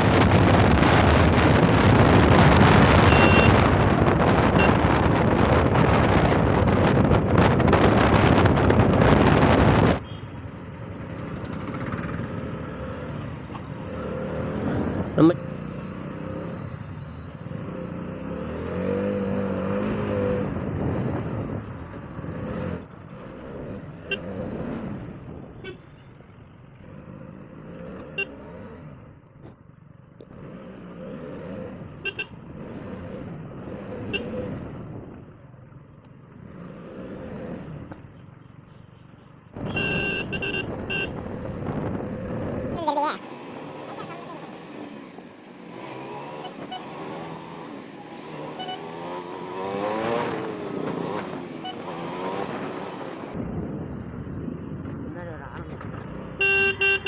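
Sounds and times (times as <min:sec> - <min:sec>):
wind noise on microphone: 0:00.0 - 0:10.1, 0:39.6 - 0:42.8, 0:53.3 - 0:56.2
motorcycle engine: 0:00.0 - 0:57.0
town traffic: 0:00.0 - 0:57.0
vehicle horns honking: 0:03.0 - 0:03.7, 0:32.0 - 0:32.4, 0:39.6 - 0:41.2, 0:48.6 - 0:48.9, 0:56.4 - 0:57.0.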